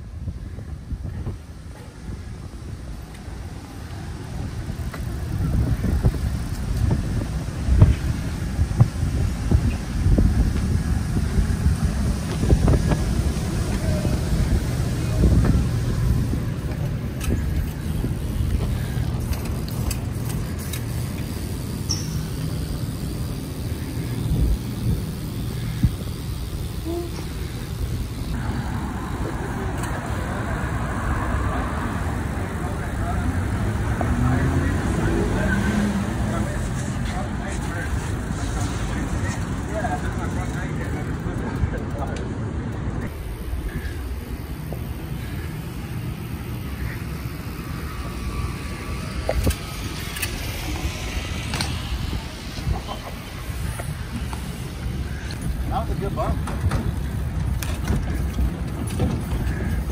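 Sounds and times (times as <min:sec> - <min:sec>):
car traffic: 0:00.0 - 0:59.9
road noise: 0:00.0 - 0:59.9
wind rumbling on microphone: 0:00.0 - 0:59.9
bicycle knocks and bumps: 0:51.4 - 0:51.9, 0:56.4 - 0:59.9.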